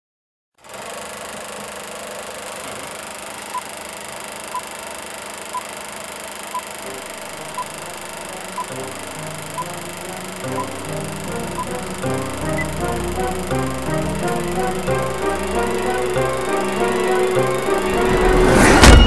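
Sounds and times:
film projector whirring and crackling: 0.6s - 17.8s
low music notes: 8.8s - 18.8s
short high beeps: 10.5s - 10.7s.

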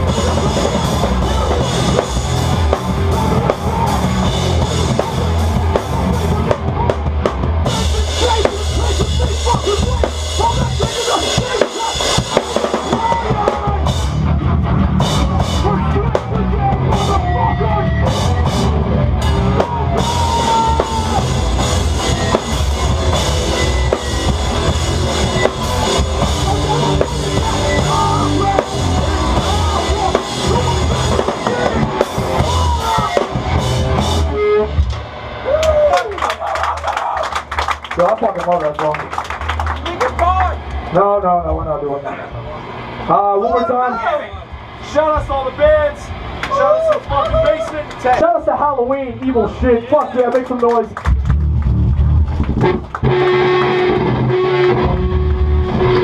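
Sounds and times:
bass drum: 0.0s - 35.9s, 51.1s - 56.0s
hardcore band playing live: 0.0s - 43.2s, 50.3s - 56.0s.

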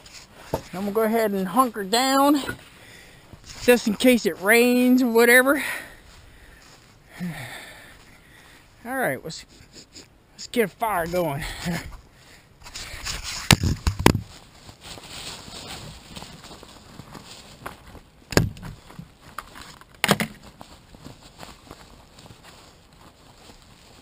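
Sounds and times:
rustling in dry leaves: 11.1s - 24.0s.

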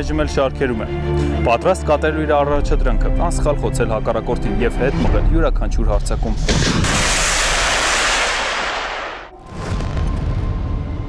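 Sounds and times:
rockets launching in salvo: 6.3s - 10.0s.

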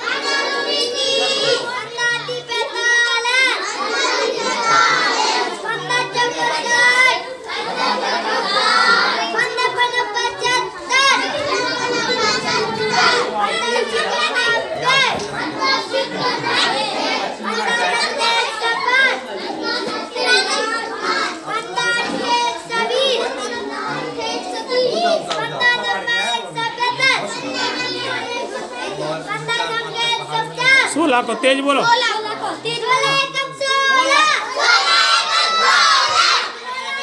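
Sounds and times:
children chanting in unison: 0.0s - 26.0s, 30.0s - 37.0s.

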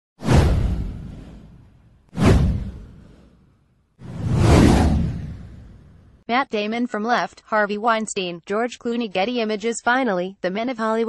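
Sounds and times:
whoosh sound effects: 0.2s - 6.1s.

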